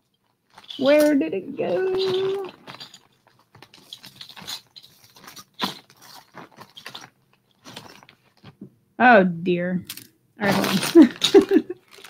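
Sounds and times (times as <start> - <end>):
plastic bags rustling: 0.2 - 8.5, 10.4 - 12.0.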